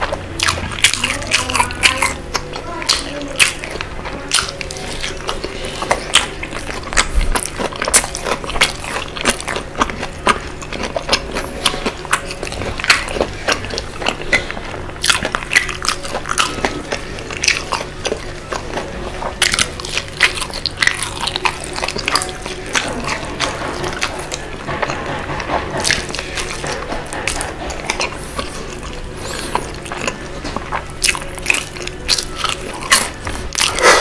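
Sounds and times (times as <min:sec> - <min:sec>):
chewing fried chicken: 0:00.0 - 0:34.0.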